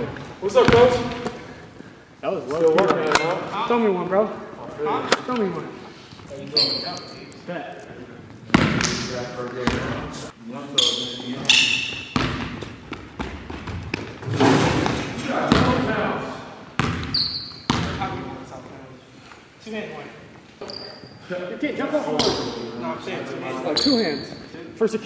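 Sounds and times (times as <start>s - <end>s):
sneakers squeaking: 6.2s - 7.3s, 8.2s - 15.9s, 16.7s - 18.3s, 20.5s - 21.3s, 23.6s - 24.6s
basketball bouncing on hardwood: 12.1s - 15.8s, 16.8s - 17.1s.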